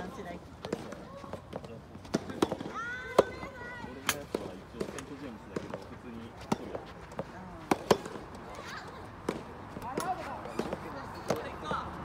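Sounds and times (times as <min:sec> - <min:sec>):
tennis balls being hit: 0:00.1 - 0:11.9.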